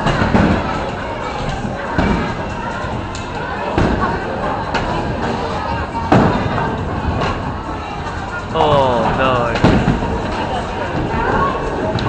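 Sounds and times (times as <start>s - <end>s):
voices: 8.5s - 9.7s.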